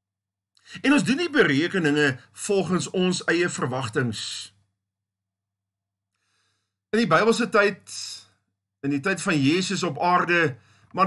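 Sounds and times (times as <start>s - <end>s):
man speaking: 0.7s - 4.7s, 7.0s - 11.0s.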